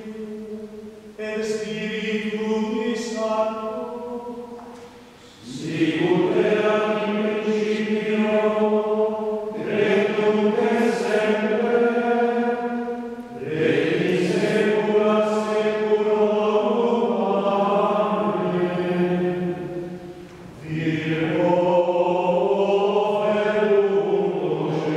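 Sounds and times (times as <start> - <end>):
men chanting: 5.4 - 19.6, 20.6 - 24.9.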